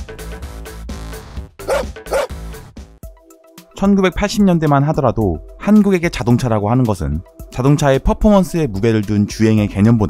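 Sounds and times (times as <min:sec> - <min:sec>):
short dog barks: 0:01.7 - 0:02.3.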